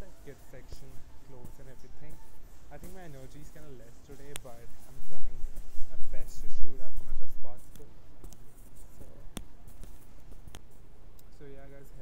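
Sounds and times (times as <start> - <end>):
rustling and handling noise: 0.0 - 12.0
store background hum: 0.0 - 12.0.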